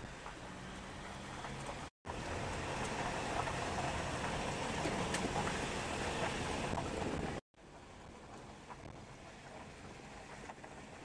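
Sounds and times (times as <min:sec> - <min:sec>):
car driving on gravel: 0:00.0 - 0:11.0.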